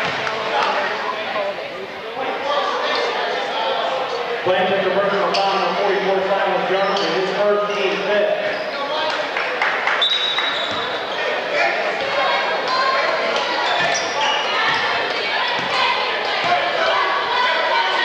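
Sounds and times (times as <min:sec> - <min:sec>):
spectators chatting: 0:00.0 - 0:18.0.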